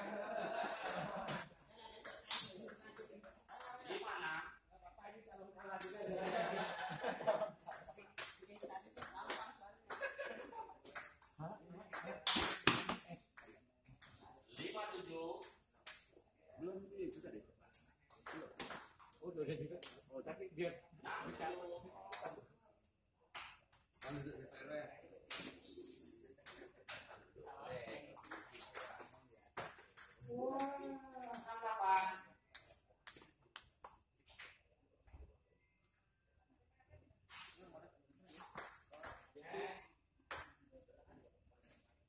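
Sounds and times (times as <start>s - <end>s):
table tennis ball bouncing: 0.8s - 3.8s, 5.8s - 6.0s, 7.6s - 16.2s, 17.8s - 19.2s, 19.8s - 20.1s, 22.1s - 22.4s, 23.3s - 24.3s, 25.3s - 25.6s, 26.4s - 27.0s, 28.2s - 34.1s, 38.3s - 39.3s, 40.3s - 40.6s
paddles hitting ball: 12.0s - 14.2s.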